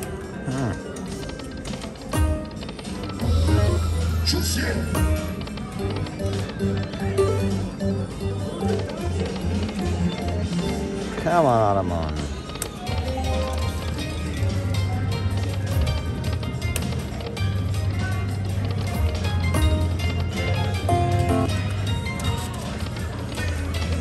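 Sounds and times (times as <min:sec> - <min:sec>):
casino music: 0:00.0 - 0:24.0
slot machine jingles and effects: 0:02.2 - 0:11.7, 0:19.6 - 0:22.2.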